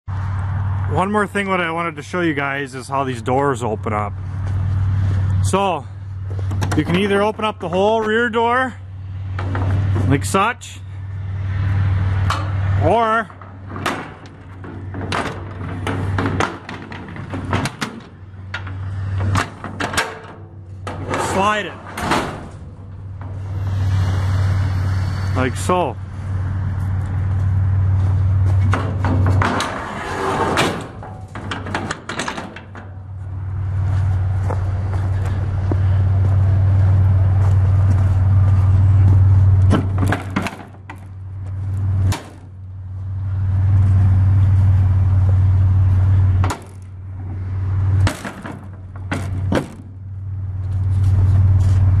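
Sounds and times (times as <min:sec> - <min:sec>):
low hum: 0:00.1 - 0:52.0
metal trailer door rattling: 0:12.1 - 0:23.6, 0:28.6 - 0:33.9, 0:39.7 - 0:41.2, 0:46.3 - 0:50.1.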